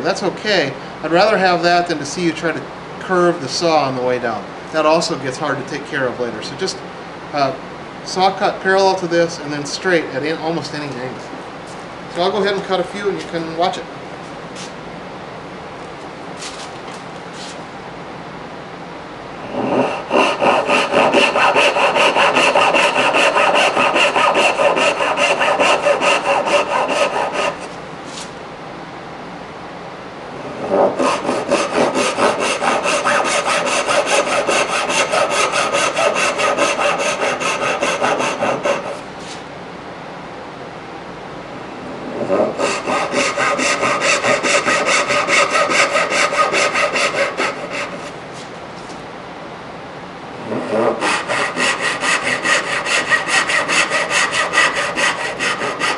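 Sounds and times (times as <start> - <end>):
handsaw cutting wood: 19.5 - 27.8, 30.7 - 39.0, 42.2 - 48.1, 50.5 - 55.9.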